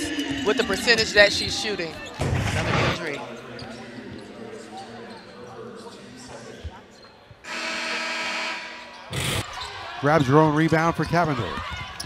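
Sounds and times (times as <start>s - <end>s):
arena crowd noise: 0.0s - 12.0s
basketball court sounds: 0.8s - 3.0s, 5.1s - 12.0s
arena horn: 7.5s - 9.0s.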